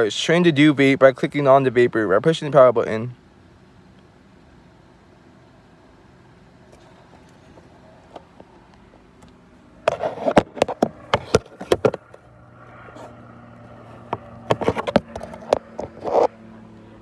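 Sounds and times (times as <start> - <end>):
phone and box handling noise: 9.2 - 12.3, 14.1 - 16.4.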